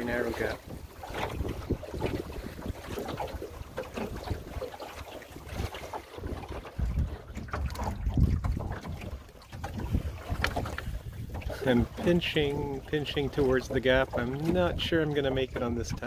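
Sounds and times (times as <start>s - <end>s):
water splashing against hull: 0.0s - 16.0s
wind buffeting microphone: 0.0s - 16.0s.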